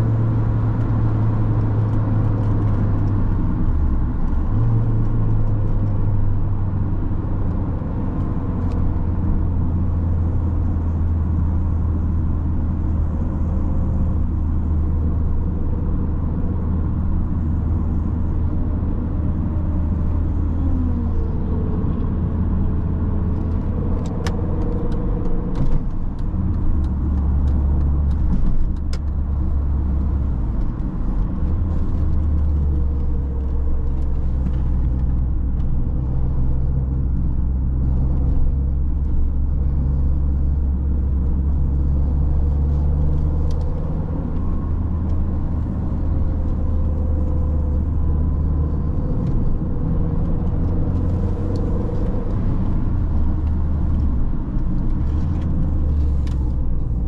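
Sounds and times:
car engine drone from inside: 0:00.0 - 0:57.0
road noise: 0:00.0 - 0:57.0.

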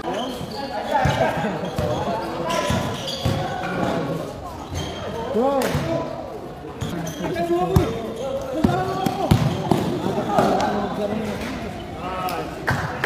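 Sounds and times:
players calling out: 0:00.0 - 0:13.0
basketball bouncing on concrete: 0:08.6 - 0:09.9.

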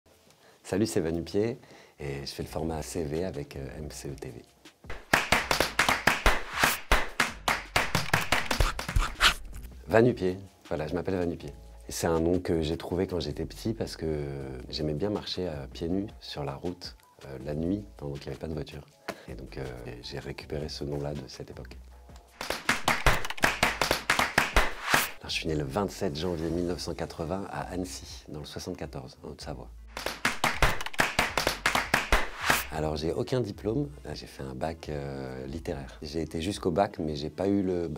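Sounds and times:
rapid clap-like hits: 0:04.9 - 0:09.3, 0:22.4 - 0:25.2, 0:29.9 - 0:32.8.

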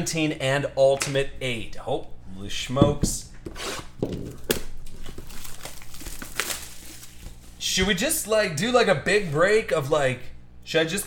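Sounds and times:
plastic packaging crinkling: 0:04.1 - 0:07.7.

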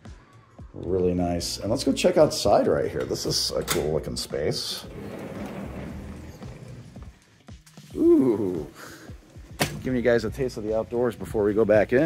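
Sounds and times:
sliding glass door rumbling on track: 0:04.8 - 0:07.2.

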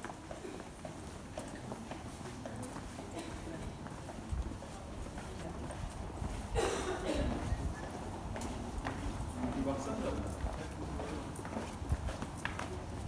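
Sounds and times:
footsteps on cobblestones: 0:00.0 - 0:13.0.

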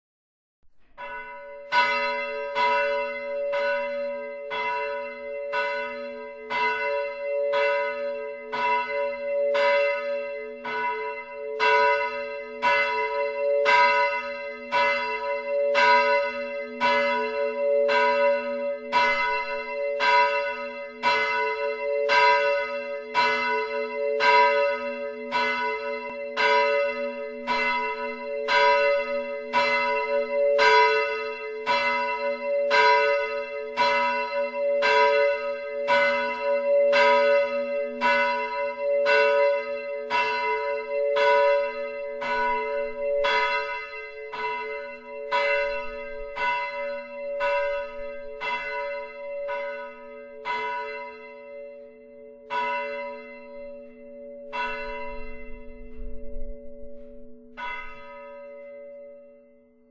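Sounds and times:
church bell ringing: 0:00.7 - 0:59.9.

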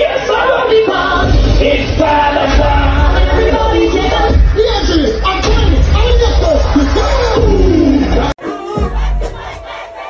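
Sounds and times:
bass-heavy dancehall music: 0:00.0 - 0:10.0
crowd shouting and cheering: 0:00.0 - 0:10.0.

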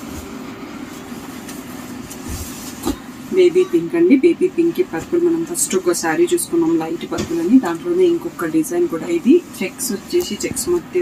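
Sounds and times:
fabric rustling: 0:00.0 - 0:03.4
steady low background hum: 0:00.0 - 0:11.0.

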